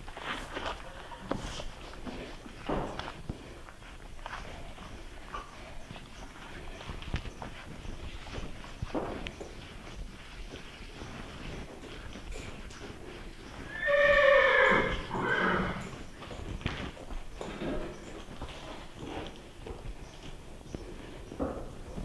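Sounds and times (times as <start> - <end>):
horse whinnying: 13.6 - 15.9.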